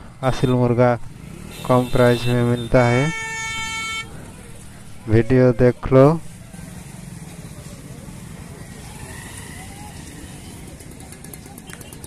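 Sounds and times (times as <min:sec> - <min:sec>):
street traffic hum: 0:00.0 - 0:12.0
motorcycle horn: 0:01.4 - 0:04.2.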